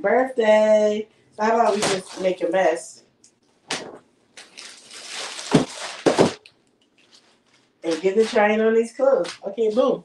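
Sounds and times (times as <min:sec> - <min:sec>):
plastic bag rustling and crinkling: 0:04.4 - 0:08.6
sharp thuds: 0:05.4 - 0:06.4.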